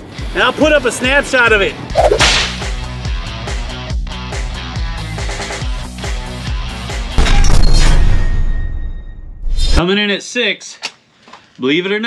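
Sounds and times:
whoosh sound effect: 0:01.9 - 0:02.5.

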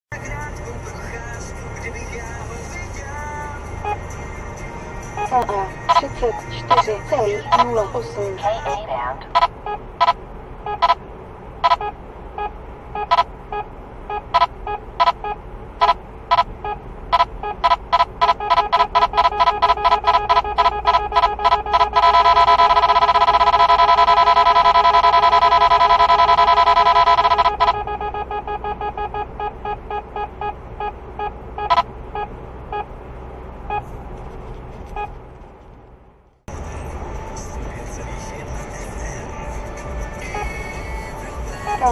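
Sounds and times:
continuous electronic tone: 0:00.2 - 0:34.0, 0:34.8 - 0:35.3, 0:36.5 - 0:41.9
radar detector electronic beeps: 0:05.2 - 0:08.2, 0:09.3 - 0:11.0, 0:11.6 - 0:32.9.

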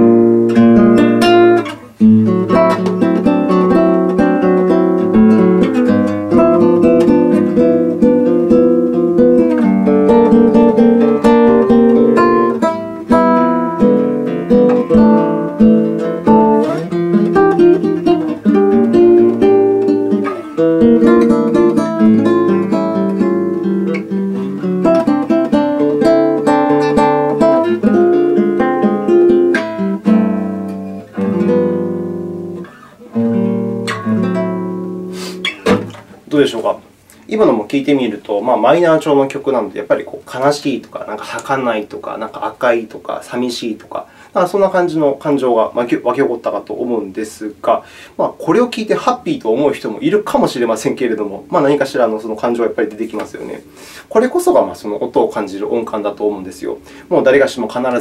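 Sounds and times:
classical guitar solo: 0:00.0 - 0:43.9.

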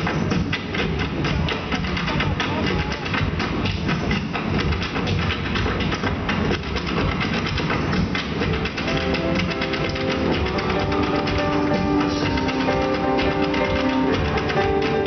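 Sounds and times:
hard shoes clattering on stage: 0:00.0 - 0:15.0
loud show music: 0:00.0 - 0:15.0.

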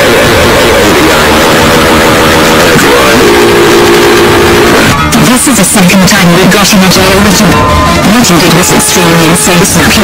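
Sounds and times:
steady held tone: 0:00.0 - 0:05.2
harsh distorted noise: 0:00.0 - 0:10.0.

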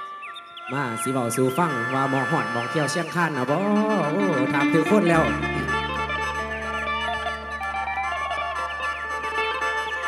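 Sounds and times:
plucked lute melody: 0:03.6 - 0:10.0
low drone: 0:04.4 - 0:10.0.

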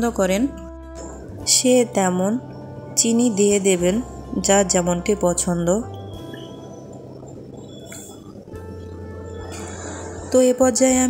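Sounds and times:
soft background music: 0:00.0 - 0:11.0
milk bubbling in a pan: 0:05.4 - 0:11.0.

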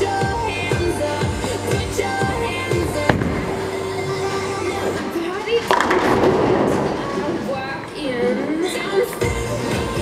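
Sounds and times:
pop music over sound system: 0:00.0 - 0:10.0
bowling ball rolling: 0:01.2 - 0:07.6.

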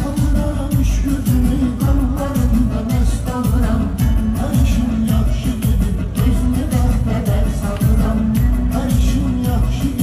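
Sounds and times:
live pop band: 0:00.0 - 0:10.0
person singing through microphone: 0:00.0 - 0:10.0.

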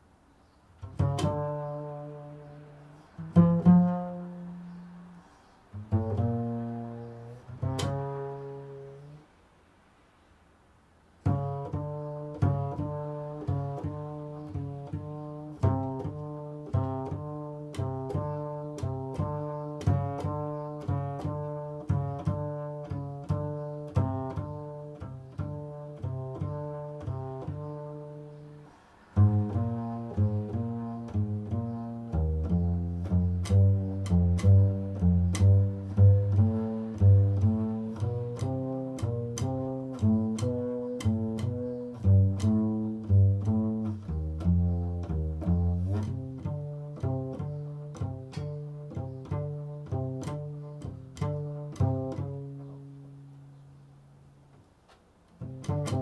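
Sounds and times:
double bass plucked notes: 0:00.8 - 0:09.3, 0:11.2 - 0:54.7, 0:55.3 - 0:56.0.

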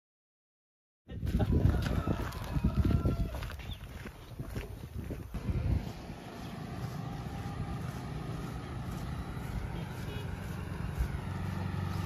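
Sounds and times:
footsteps on a road: 0:01.1 - 0:12.0
wind buffeting microphone: 0:01.1 - 0:12.0.

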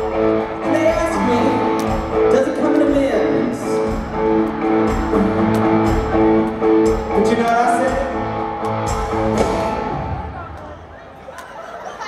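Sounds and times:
live rock band playing: 0:00.0 - 0:10.3.

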